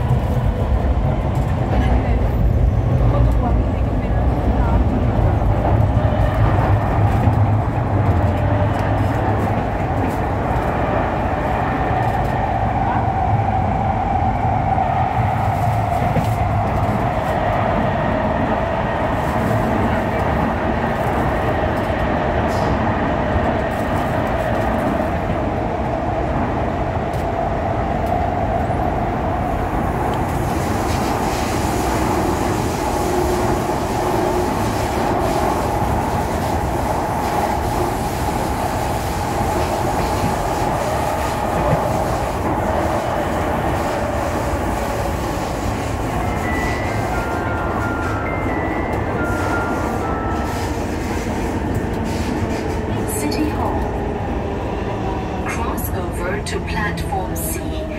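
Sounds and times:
train wheels rumbling on track: 0.0 - 57.9.

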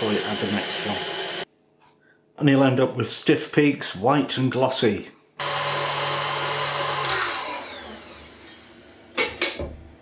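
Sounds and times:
stand mixer whisking: 0.0 - 1.4, 5.4 - 8.8.

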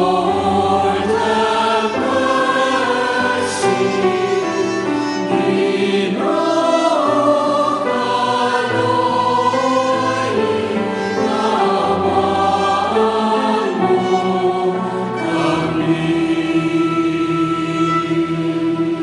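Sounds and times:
men singing chant in harmony: 0.0 - 4.4, 5.3 - 18.6.

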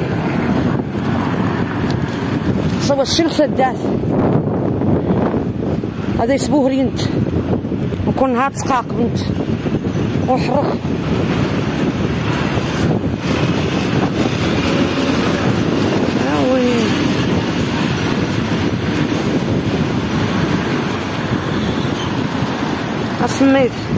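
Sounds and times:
rumbling noise on microphone: 0.0 - 23.9.

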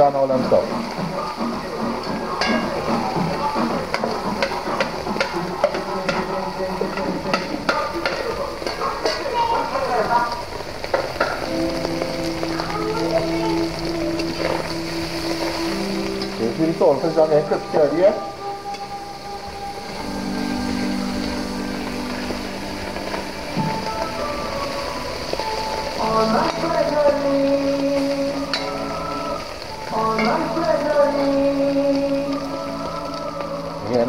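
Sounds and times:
fish sizzling in oil: 0.0 - 34.0
spatula scraping a pan: 0.8 - 9.7.

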